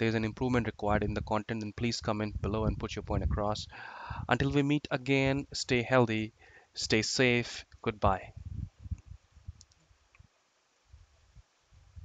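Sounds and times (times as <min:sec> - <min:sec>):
soft low thumps: 0:00.6 - 0:01.4, 0:02.0 - 0:04.7, 0:08.0 - 0:09.7.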